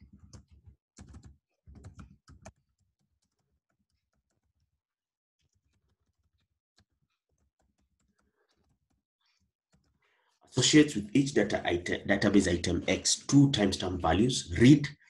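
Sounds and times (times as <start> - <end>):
keyboard typing: 0.0 - 4.8, 5.4 - 10.1.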